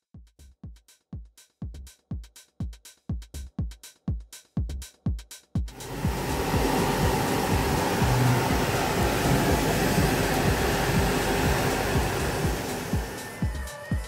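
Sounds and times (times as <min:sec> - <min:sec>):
electronic music with kick drum: 0:00.0 - 0:14.0
laser cutter air rushing: 0:05.8 - 0:14.0.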